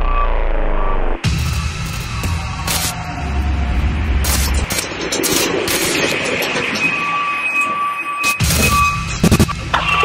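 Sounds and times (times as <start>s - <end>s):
rushing rumbling noise: 0.0s - 10.0s.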